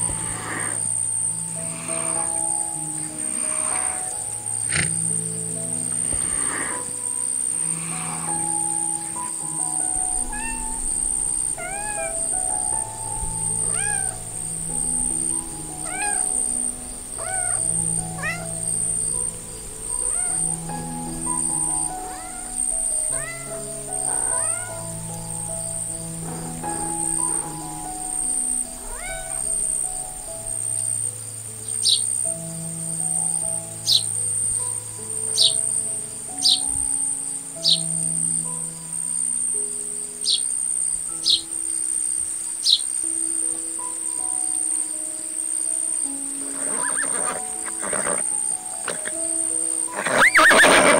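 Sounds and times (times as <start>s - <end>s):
calm background music: 0.0s - 50.9s
kitten meowing: 9.2s - 15.1s, 15.8s - 16.6s, 17.2s - 18.5s, 19.9s - 20.7s, 21.6s - 24.9s, 28.8s - 29.8s
high bird chirps: 31.6s - 32.1s, 33.8s - 34.1s, 37.6s - 38.0s, 42.6s - 43.3s.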